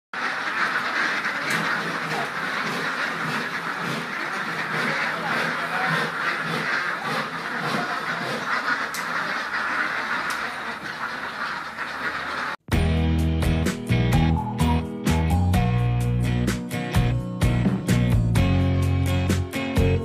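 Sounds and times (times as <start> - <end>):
ducks quacking: 0.2 - 12.7.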